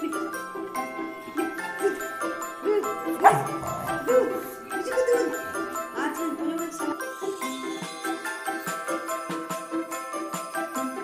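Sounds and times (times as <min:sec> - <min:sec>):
light music with chimes: 0:00.0 - 0:11.0
dog barking: 0:03.2 - 0:04.5.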